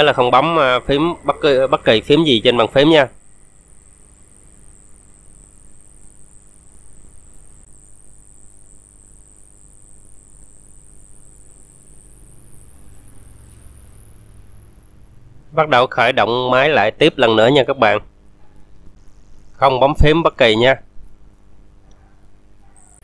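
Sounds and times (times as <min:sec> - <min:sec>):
high-pitched whine: 0:00.0 - 0:21.5
faint background hum: 0:00.0 - 0:23.0.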